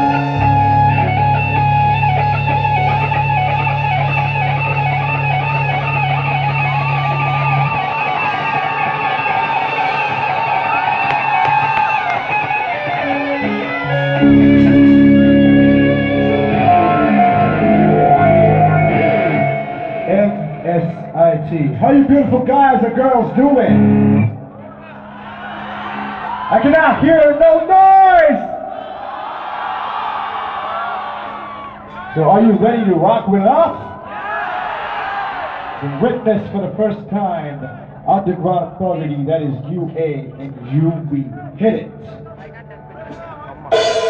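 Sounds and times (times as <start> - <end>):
rock band playing live: 0.0 - 24.4, 43.1 - 44.0
sustained bass notes: 0.0 - 25.6, 36.0 - 44.0
electric guitar lead with vibrato: 0.0 - 26.5, 43.0 - 44.0.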